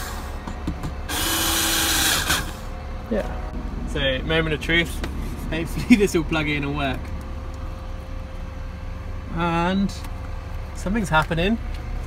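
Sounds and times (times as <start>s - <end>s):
cordless drill driving screw: 1.1s - 2.6s.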